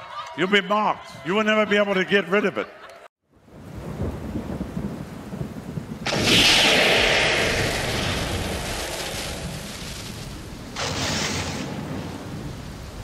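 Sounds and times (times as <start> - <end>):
low thunder rumble: 3.4 - 13.0
loud thunderclap: 3.5 - 13.0.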